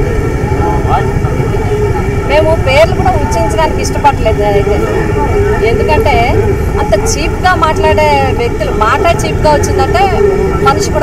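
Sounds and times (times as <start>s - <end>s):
low rumble: 0.0s - 11.0s
steady hum: 0.0s - 11.0s
woman talking: 0.6s - 11.0s.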